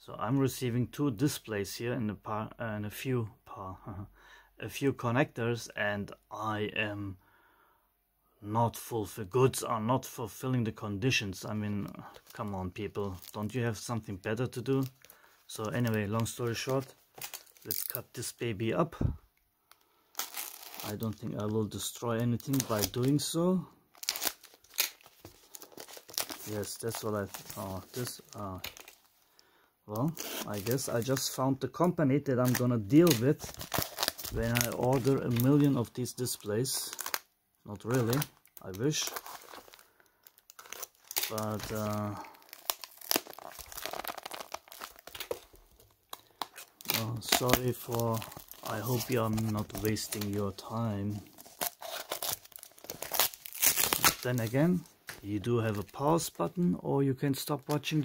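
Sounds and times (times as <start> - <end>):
plastic wrapping crinkling: 11.4 - 18.3, 19.0 - 31.4, 32.3 - 56.6.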